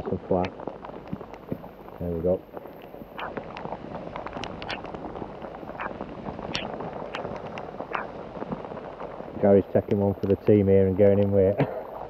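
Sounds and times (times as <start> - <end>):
heavy rain hissing: 0.0 - 12.0
raindrops ticking near microphone: 0.0 - 12.0
wet waterproof clothing rustling: 0.0 - 12.0.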